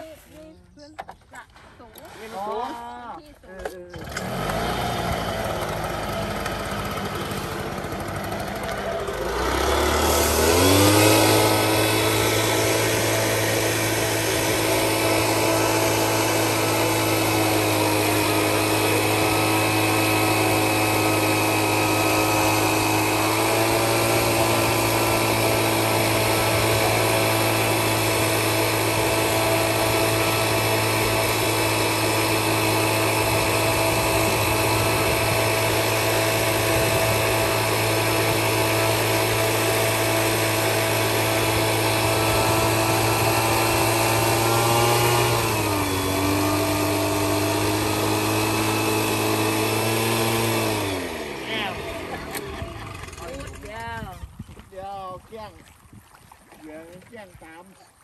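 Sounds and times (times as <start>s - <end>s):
mist-blower engine running: 1.9s - 54.2s.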